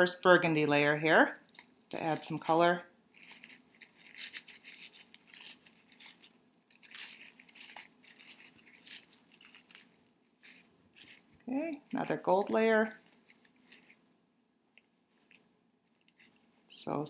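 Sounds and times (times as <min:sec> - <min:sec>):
paper napkins rustling and crinkling: 0:00.8 - 0:14.0.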